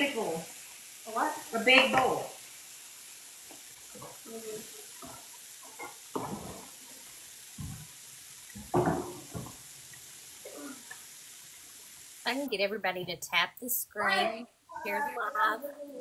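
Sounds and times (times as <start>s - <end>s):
bacon sizzling on a griddle: 0.0s - 13.9s.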